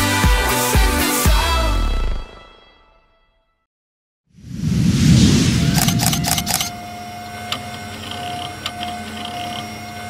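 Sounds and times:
whoosh: 4.3 - 6.7
sharp clicks and hits: 5.7 - 6.8
steady hum with held tone: 5.7 - 10.0.

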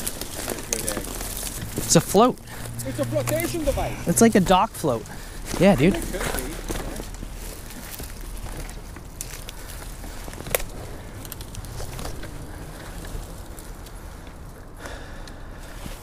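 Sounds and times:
twigs and leaves crackling underfoot: 0.0 - 16.0
twig snapping: 7.0 - 14.0.

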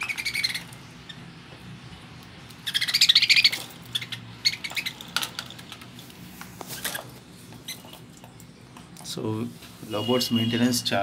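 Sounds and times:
budgerigars chirping and squawking: 0.0 - 1.3, 2.5 - 5.1.

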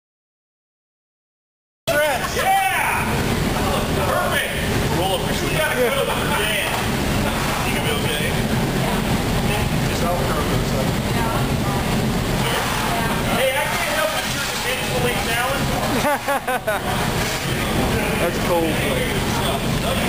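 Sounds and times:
low background rumble: 1.9 - 20.0
people talking indistinctly: 1.9 - 20.0.

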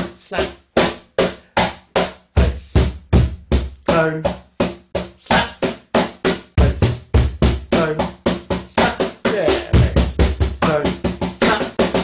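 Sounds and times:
cajon struck with hands: 0.8 - 12.0.

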